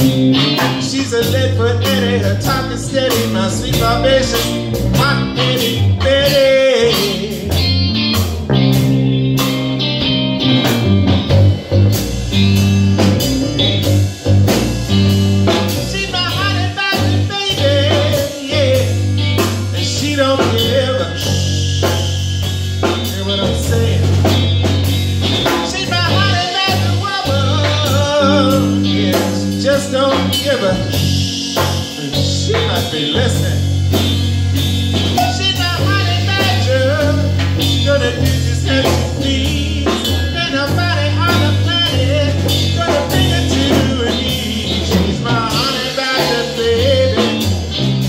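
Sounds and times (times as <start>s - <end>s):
bass line: 0.0s - 48.0s
drum kit beat: 0.0s - 48.0s
wavering lead guitar: 0.0s - 48.0s.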